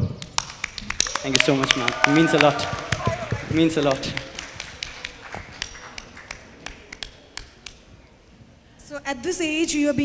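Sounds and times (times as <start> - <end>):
scattered hand clapping: 0.0 - 7.9.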